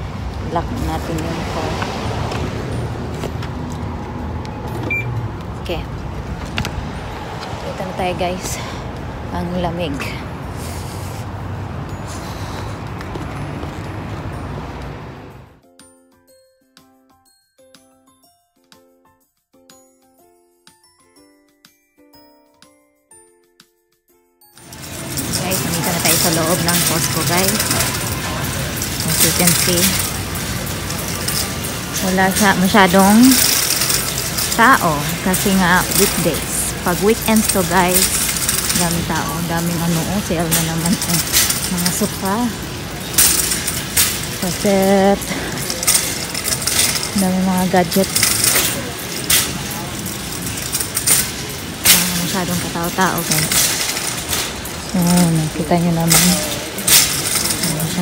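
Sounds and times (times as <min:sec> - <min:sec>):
low rumble of traffic: 0:00.0 - 0:15.6, 0:24.6 - 0:58.0
people talking: 0:00.4 - 0:02.0, 0:05.6 - 0:05.9, 0:07.6 - 0:10.2, 0:25.3 - 0:30.2, 0:31.8 - 0:33.6, 0:34.4 - 0:42.7, 0:44.4 - 0:46.3, 0:46.9 - 0:50.2, 0:51.8 - 0:53.8, 0:54.9 - 0:56.8, 0:57.4 - 0:58.0
music with chime tones: 0:15.6 - 0:25.3
shopping cart rattling: 0:24.6 - 0:58.0.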